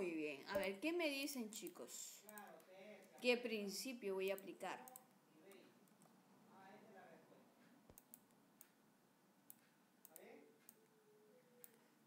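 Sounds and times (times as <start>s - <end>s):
computer mouse clicks: 7.9s - 8.8s, 11.6s - 11.8s.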